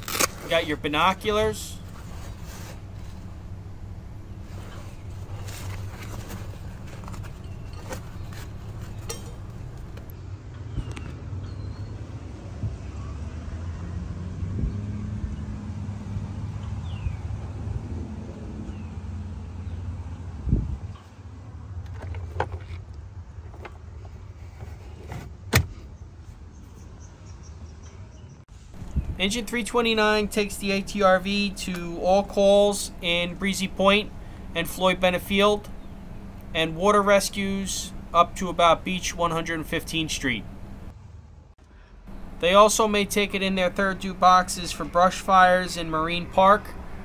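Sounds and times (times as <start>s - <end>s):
gear clicking and rustling: 4.4s - 11.0s.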